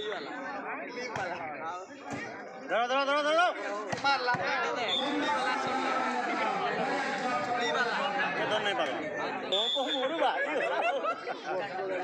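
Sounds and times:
players and spectators shouting: 0:02.9 - 0:10.5.

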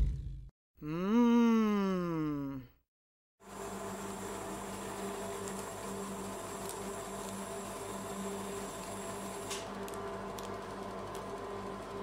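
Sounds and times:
refrigeration unit humming: 0:03.4 - 0:12.0.

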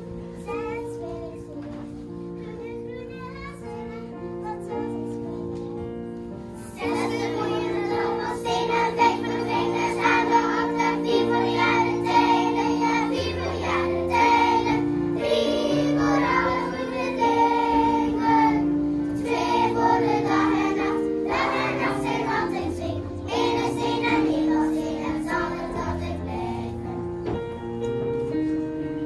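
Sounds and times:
children's choir singing: 0:00.0 - 0:05.8, 0:06.5 - 0:27.6
keyboard accompaniment: 0:00.0 - 0:29.0.

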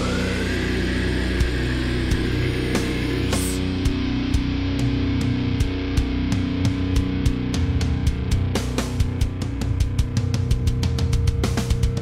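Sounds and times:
distorted electric guitar chord: 0:00.0 - 0:12.0
rising whine: 0:00.0 - 0:12.0.

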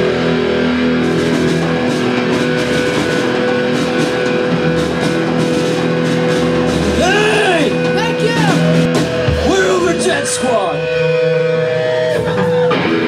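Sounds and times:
rock band playing: 0:00.0 - 0:13.0.

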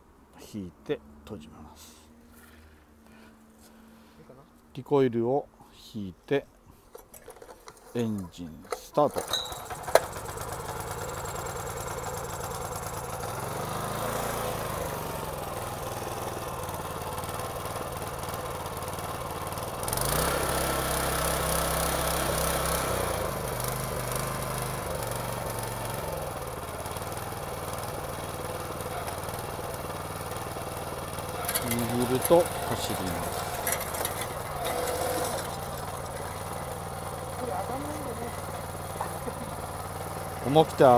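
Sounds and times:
tiller engine running: 0:08.7 - 0:40.9.

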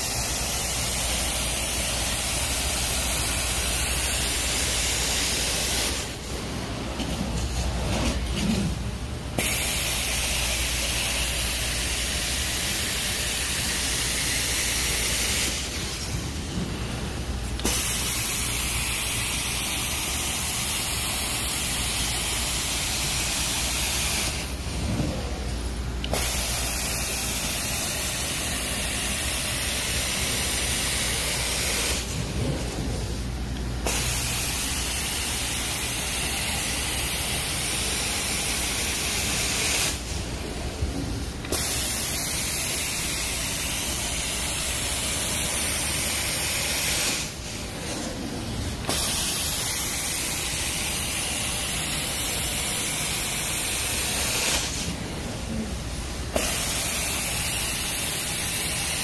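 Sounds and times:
carpet cleaner spraying and sucking: 0:00.0 - 0:59.0.

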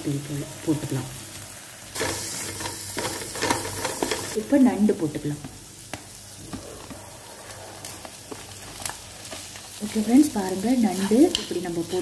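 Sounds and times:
onion sizzling in a frying pan: 0:00.0 - 0:12.0.

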